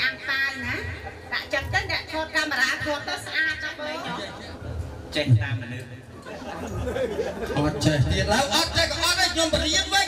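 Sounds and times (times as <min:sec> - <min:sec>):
people talking into a microphone: 0:00.0 - 0:10.0.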